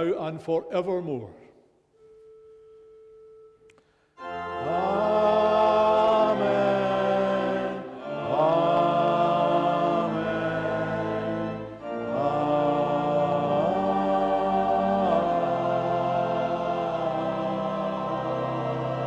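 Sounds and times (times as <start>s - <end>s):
choir and congregation singing: 4.2s - 19.0s
organ: 4.2s - 19.0s.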